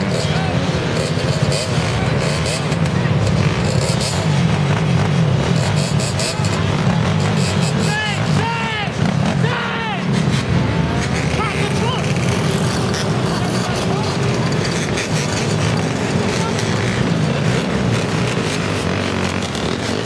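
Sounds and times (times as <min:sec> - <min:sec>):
crowd voices: 0:00.0 - 0:20.0
dirt bike and atv engines revving: 0:00.0 - 0:20.0.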